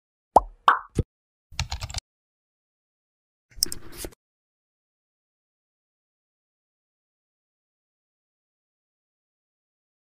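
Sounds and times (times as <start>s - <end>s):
keyboard typing clicks: 1.6s - 2.0s, 3.5s - 3.9s.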